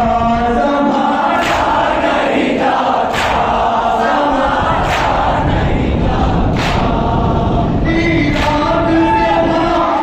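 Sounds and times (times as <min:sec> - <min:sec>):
men chanting a lament: 0:00.0 - 0:10.0
group chest slaps: 0:01.3 - 0:02.4, 0:03.0 - 0:05.7, 0:06.5 - 0:07.2, 0:08.3 - 0:08.7.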